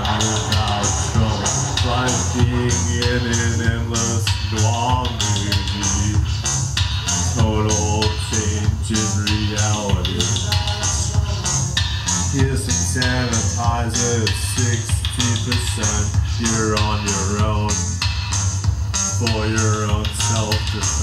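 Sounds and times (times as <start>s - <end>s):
man singing into microphone: 0.0s - 6.4s, 7.2s - 11.4s, 12.1s - 18.0s, 19.0s - 21.0s
live band music: 0.0s - 21.0s.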